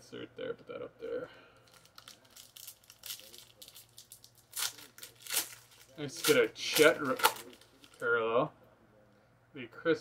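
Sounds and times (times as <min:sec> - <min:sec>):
wrapper tearing and crinkling: 0:01.6 - 0:08.0.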